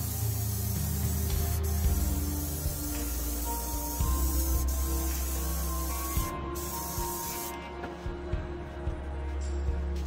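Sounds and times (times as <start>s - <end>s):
spray paint can hissing: 0.0s - 7.6s.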